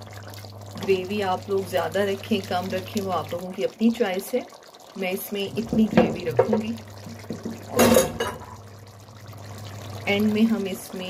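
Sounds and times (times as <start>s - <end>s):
liquid sloshing: 0.0s - 10.4s
curry bubbling in a pot: 0.0s - 11.0s.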